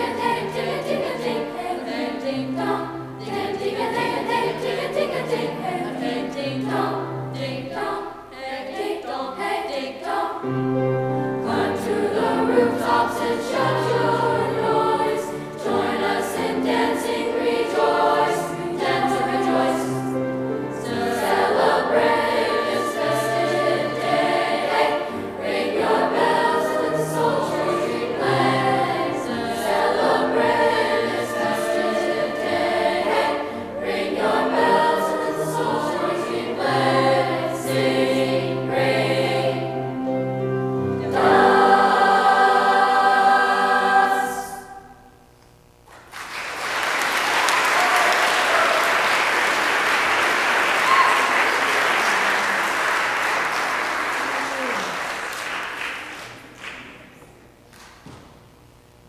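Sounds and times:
youth choir singing: 0.0s - 45.0s.

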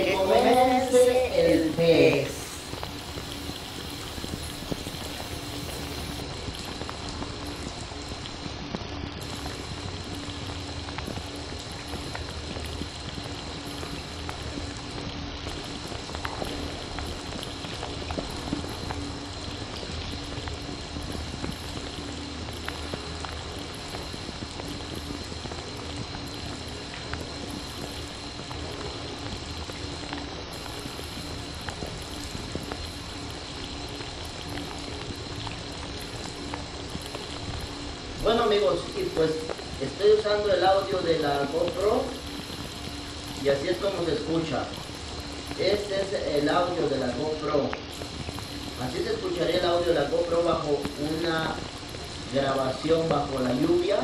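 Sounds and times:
shower water hissing: 0.0s - 54.0s.

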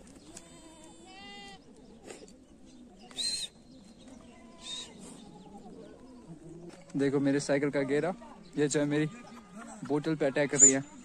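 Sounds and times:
goats bleating: 0.3s - 1.6s.

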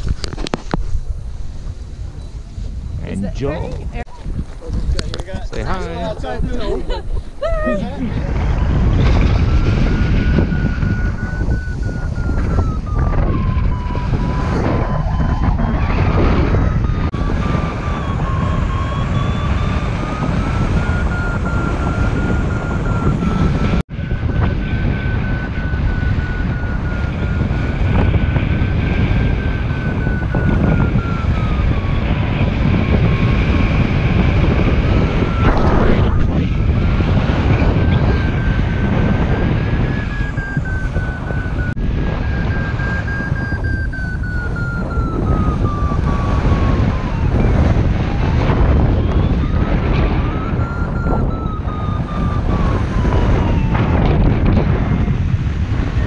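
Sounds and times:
wind buffeting microphone: 0.0s - 56.0s
thin wavering whistle: 8.5s - 55.1s.

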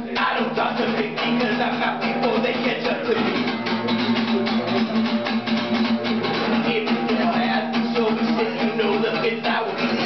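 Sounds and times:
strummed guitar: 0.0s - 10.0s
live band playing: 3.1s - 10.0s.

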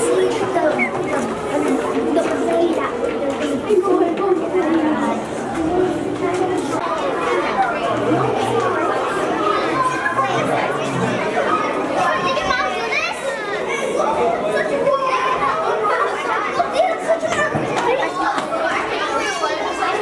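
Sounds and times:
high voice calling out: 0.0s - 1.7s
children chattering: 0.0s - 20.0s.

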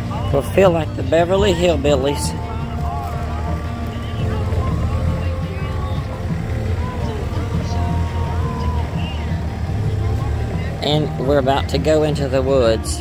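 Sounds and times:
faint voices or music: 0.0s - 13.0s
golf cart driving over grass: 0.0s - 13.0s.

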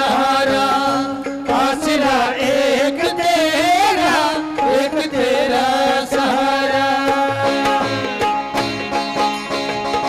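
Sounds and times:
harmonium: 0.0s - 10.0s.

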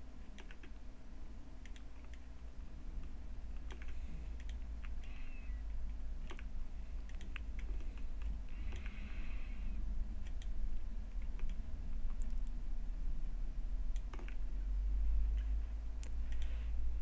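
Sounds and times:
steady low hum: 0.0s - 17.0s
mouse and keyboard clicks: 0.3s - 0.8s, 1.6s - 2.3s, 3.5s - 9.2s, 10.2s - 12.5s, 13.9s - 14.5s.

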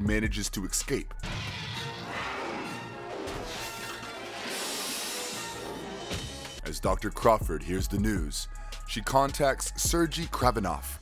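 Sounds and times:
dramatic background music: 1.0s - 6.8s
crashing sound effect: 1.2s - 6.6s.

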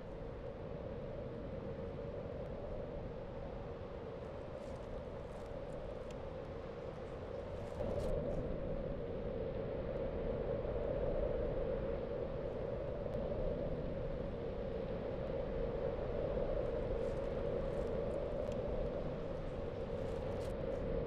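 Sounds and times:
steady rumbling hum: 12.0s - 21.0s.

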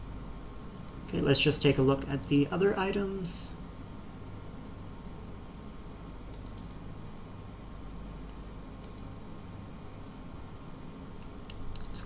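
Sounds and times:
low room hum: 0.0s - 12.0s
computer input clicks: 6.3s - 6.8s, 8.8s - 9.1s.

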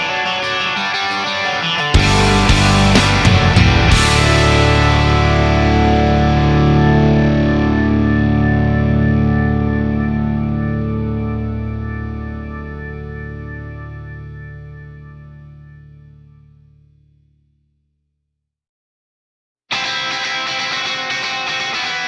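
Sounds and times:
distorted electric guitar chord: 0.0s - 16.7s, 19.7s - 22.0s
bass guitar: 1.5s - 17.6s.

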